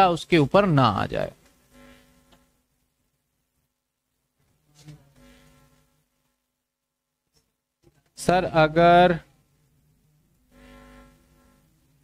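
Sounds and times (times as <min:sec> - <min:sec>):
low buzzing hum: 0:00.5 - 0:06.9, 0:09.3 - 0:12.0.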